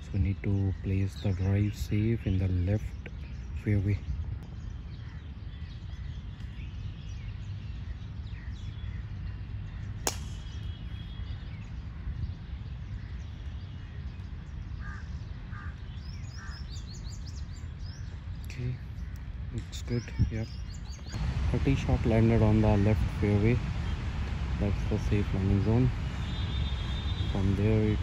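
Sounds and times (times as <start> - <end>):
bird calls: 0.0 - 28.0
low background rumble: 4.6 - 28.0
golf club striking ball: 10.0 - 10.7.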